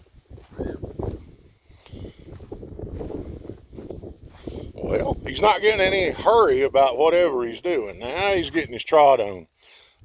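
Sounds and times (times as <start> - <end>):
footsteps on grass and dirt: 0.0 - 6.9
wind buffeting microphone: 0.0 - 8.8.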